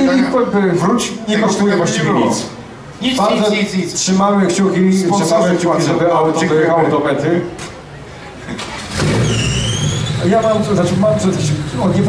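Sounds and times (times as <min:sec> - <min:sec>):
car engine starting and running: 0:08.6 - 0:12.0
high rising squeal: 0:08.9 - 0:10.8.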